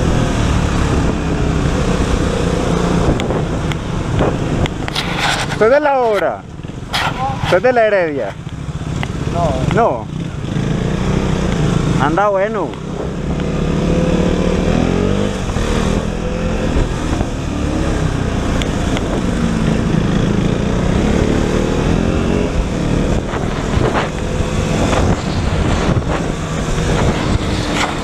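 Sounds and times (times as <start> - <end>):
wind on microphone: 0.0 - 7.6, 12.8 - 28.0
motorcycle engine revving: 0.0 - 28.0.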